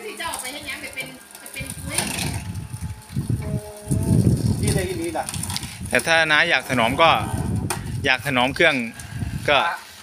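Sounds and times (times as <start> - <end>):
electric juicer rumbling: 0.0 - 8.0.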